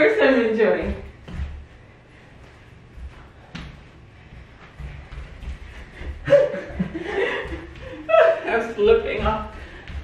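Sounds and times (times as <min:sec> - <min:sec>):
footsteps on hard floor: 0:00.6 - 0:10.0.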